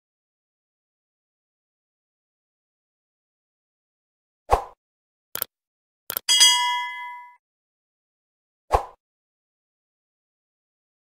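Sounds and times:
notification bell ding: 0:06.3 - 0:07.4.

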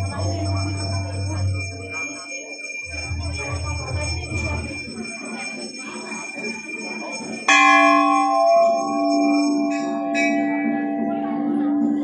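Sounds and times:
crowd murmur: 0:00.0 - 0:12.0
temple bell ringing: 0:00.0 - 0:12.0.

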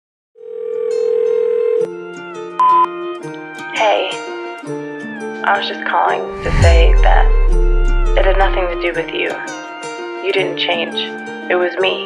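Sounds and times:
low hum: 0:06.3 - 0:09.1.

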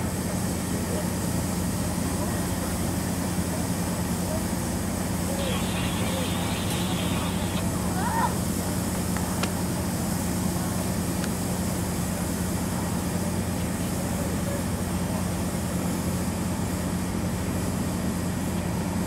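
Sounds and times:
diesel locomotive idling: 0:00.0 - 0:17.0.

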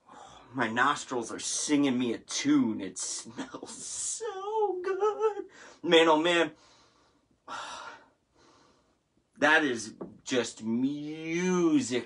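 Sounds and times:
faint breath: 0:06.6 - 0:09.0.

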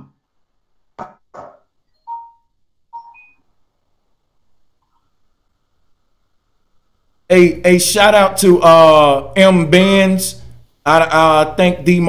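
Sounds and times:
short electronic beeps: 0:01.9 - 0:03.5.

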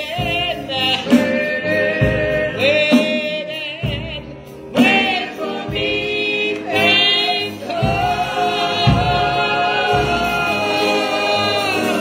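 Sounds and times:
gospel singing with vibrato: 0:00.0 - 0:12.0.

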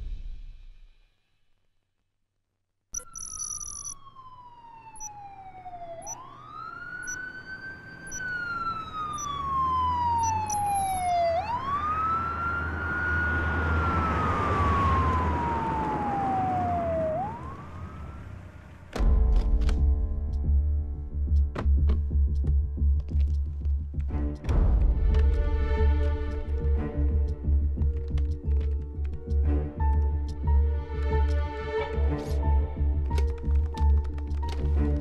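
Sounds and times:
high beeping: 0:03.0 - 0:04.0, 0:10.2 - 0:11.1
police siren wailing: 0:03.0 - 0:18.9
low vehicle rumble: 0:03.7 - 0:35.0.

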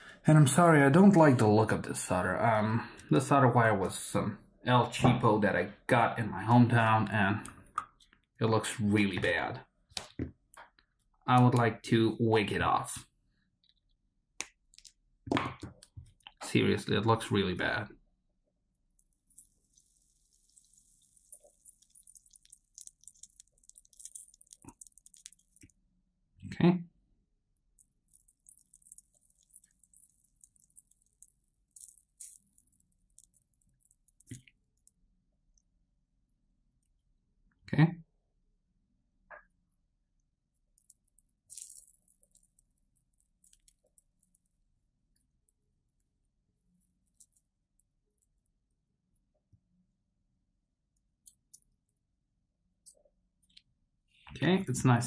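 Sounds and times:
flux crackling and sizzling: 0:18.9 - 0:25.8, 0:27.8 - 0:35.0.

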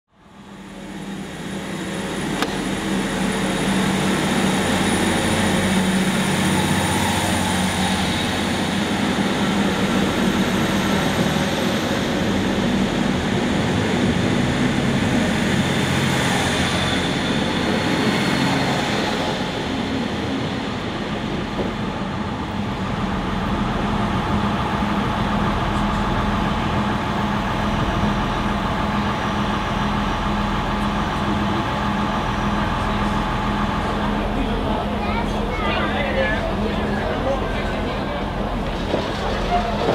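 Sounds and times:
diesel train engine humming: 0:00.1 - 0:39.9
rail noise: 0:00.1 - 0:39.9.

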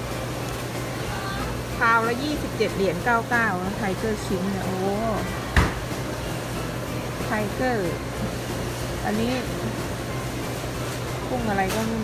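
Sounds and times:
refrigerator and air handling hum: 0:00.0 - 0:12.0
person talking: 0:09.0 - 0:09.7, 0:11.3 - 0:12.0.

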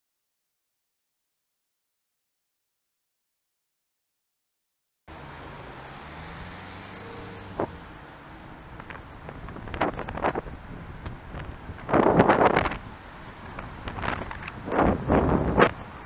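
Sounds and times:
car engine running: 0:05.1 - 0:12.8
road traffic: 0:05.1 - 0:16.0
wind buffeting microphone: 0:08.6 - 0:16.0.

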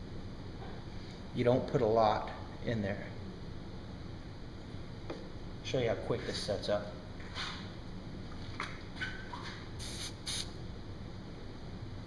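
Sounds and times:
pump spray bottle spritzes: 0:09.8 - 0:10.5.

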